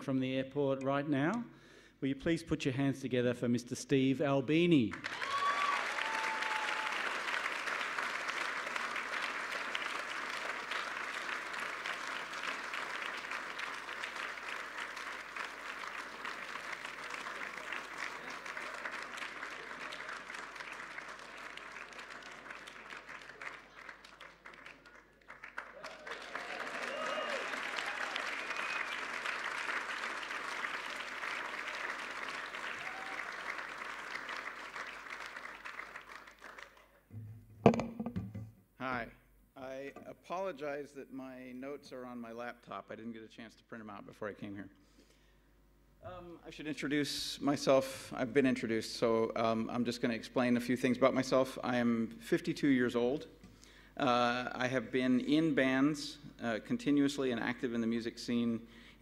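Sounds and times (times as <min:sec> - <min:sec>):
audience applauding: 0:04.9 - 0:37.0.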